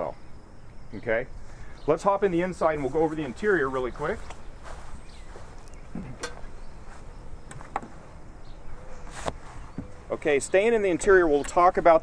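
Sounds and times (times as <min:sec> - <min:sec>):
insects: 0:00.0 - 0:12.0.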